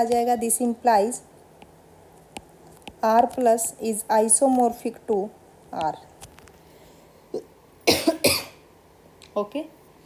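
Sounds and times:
woman coughing: 0:07.9 - 0:08.6.

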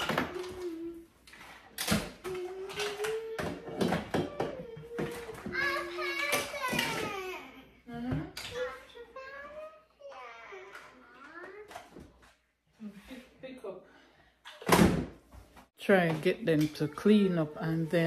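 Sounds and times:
plastic toys clattering into bins: 0:01.3 - 0:07.3.

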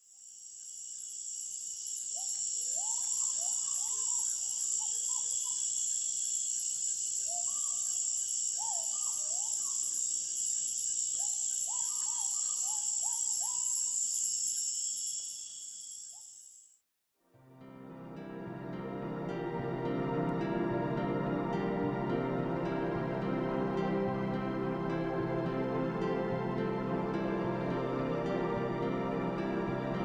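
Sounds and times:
insect chorus: 0:00.0 - 0:16.8.

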